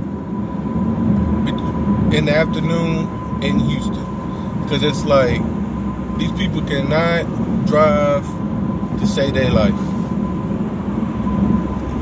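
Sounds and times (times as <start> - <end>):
car road and engine noise: 0.0 - 12.0
faint steady whine: 0.0 - 12.0.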